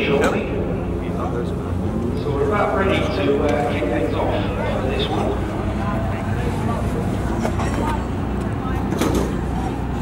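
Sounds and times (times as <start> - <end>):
race car engine idling: 0.0 - 10.0
voices chattering: 0.0 - 10.0.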